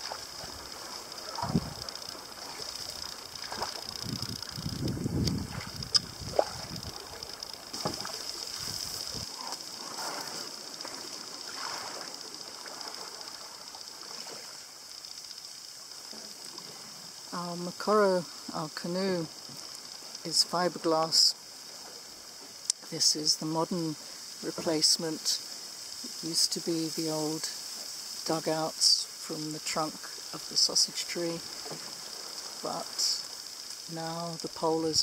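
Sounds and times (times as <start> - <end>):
high-pitched hum: 0.0 - 13.9
reeds scraping along canoe: 0.0 - 15.1
water lapping and dripping: 0.0 - 20.4.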